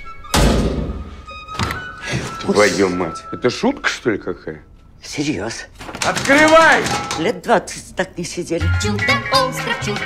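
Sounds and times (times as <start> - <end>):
background music: 0.0 - 5.0, 8.1 - 10.0
heavy bass-laden thud: 0.3 - 1.1.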